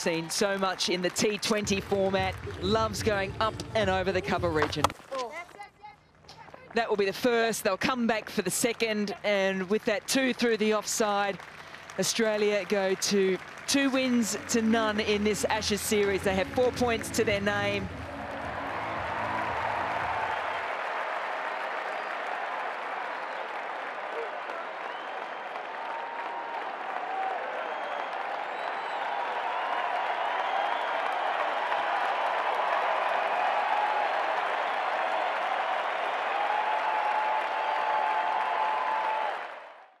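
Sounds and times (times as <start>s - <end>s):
crowd applauding: 0.0s - 4.9s, 5.6s - 40.0s.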